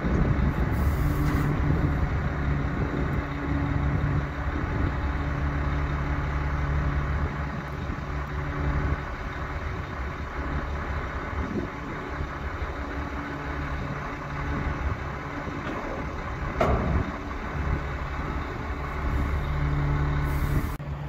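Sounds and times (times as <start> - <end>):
heavy truck engine idling: 0.0 - 21.0.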